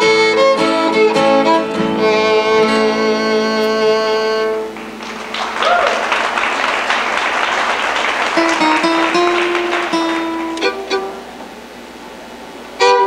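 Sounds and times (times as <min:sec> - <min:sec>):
loud fiddle tune: 0:00.0 - 0:05.0, 0:08.4 - 0:11.4, 0:12.8 - 0:13.0
acoustic guitar strumming: 0:00.0 - 0:05.4, 0:08.3 - 0:11.8, 0:12.8 - 0:13.0.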